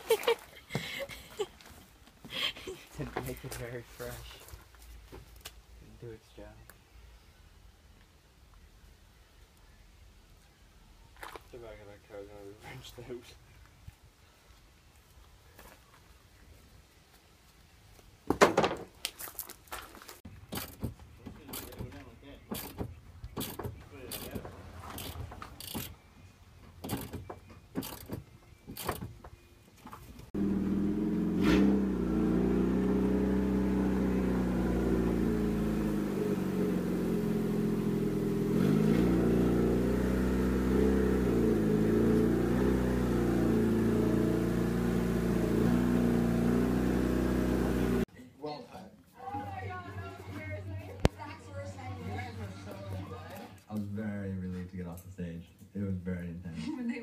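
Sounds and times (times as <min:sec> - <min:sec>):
sharp clicks and knocks: 0:20.4 - 0:26.0, 0:26.6 - 0:29.4.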